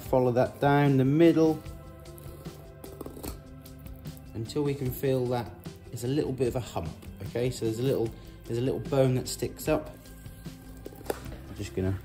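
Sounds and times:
quiet background music: 0:00.0 - 0:12.0
knife scratching fish skin: 0:02.0 - 0:03.4.

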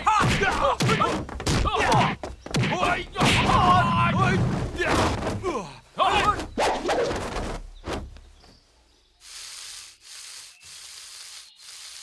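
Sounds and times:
men shouting: 0:00.0 - 0:06.8.

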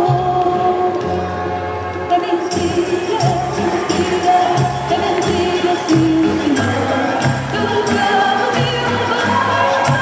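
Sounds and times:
bass line: 0:00.0 - 0:10.0
voices singing together: 0:02.8 - 0:10.0.

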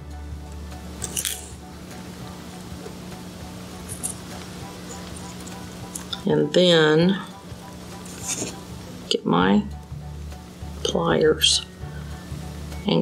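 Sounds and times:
steady low hum: 0:00.0 - 0:13.0
handling small metal jewelry parts: 0:01.0 - 0:01.6, 0:03.9 - 0:06.2.

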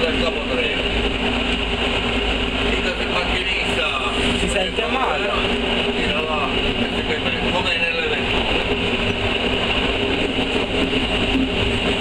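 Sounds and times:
diesel railcar mechanical drone: 0:00.0 - 0:12.0.

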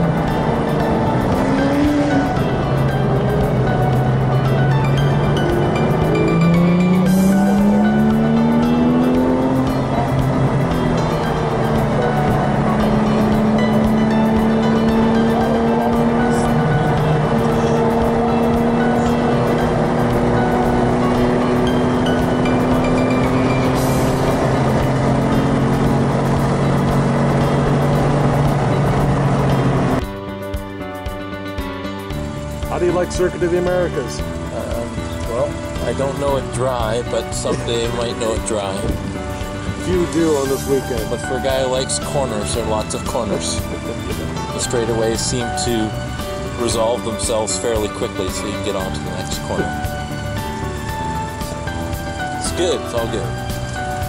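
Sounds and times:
car engine at speed: 0:00.0 - 0:30.0, 0:32.3 - 0:54.0
music: 0:00.0 - 0:54.0.

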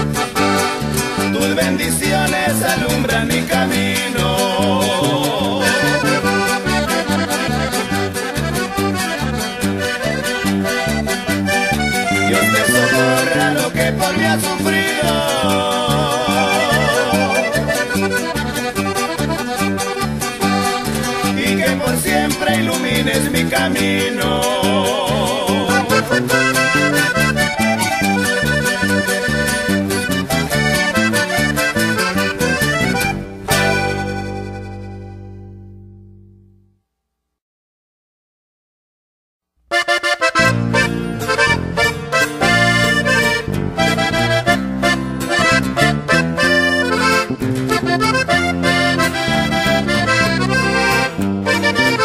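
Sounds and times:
accordion melody: 0:00.0 - 0:36.6, 0:39.7 - 0:52.0
alternating bass line: 0:00.0 - 0:36.8, 0:39.8 - 0:52.0.

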